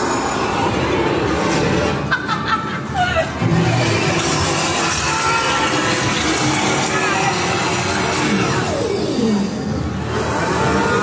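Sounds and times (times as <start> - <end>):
haunted house sound effects: 0.0 - 11.0.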